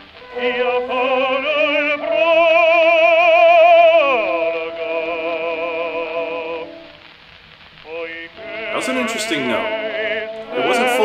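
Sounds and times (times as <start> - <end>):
baritone singing with vibrato: 0.0 - 7.1, 7.8 - 11.0.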